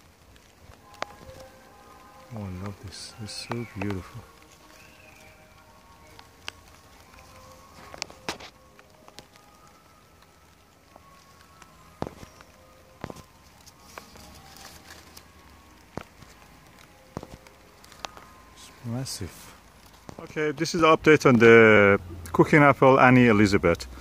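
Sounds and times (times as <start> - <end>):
leaves rustling: 0.0 - 24.0.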